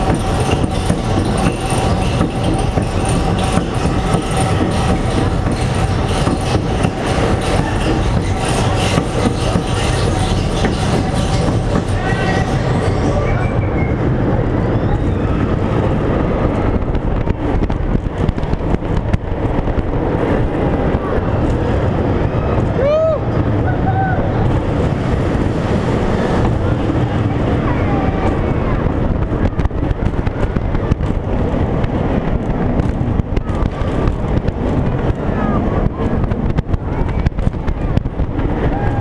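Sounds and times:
roller coaster rumble and rattling: 0.0s - 39.0s.

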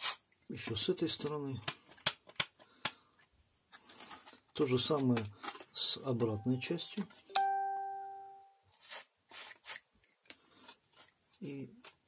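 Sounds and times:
bell-like ding: 6.4s - 8.5s.

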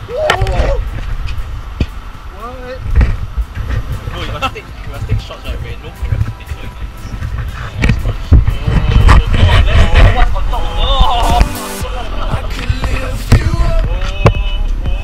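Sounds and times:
voices: 0.0s - 15.0s
music: 3.0s - 15.0s.

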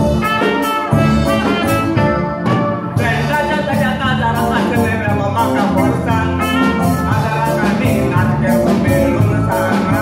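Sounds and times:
brass band music: 0.0s - 10.0s.

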